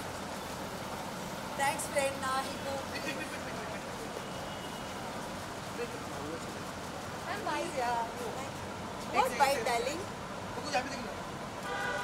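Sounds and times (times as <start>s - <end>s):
vehicle horn toot: 11.6s - 12.0s.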